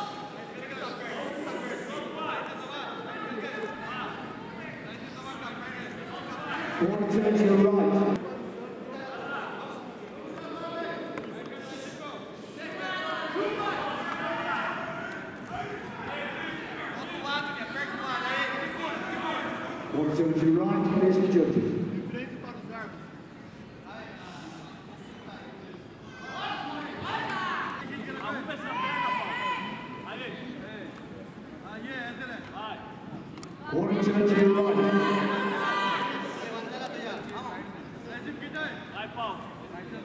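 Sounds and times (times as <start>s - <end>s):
voices talking in echoing hall: 0.0s - 40.0s.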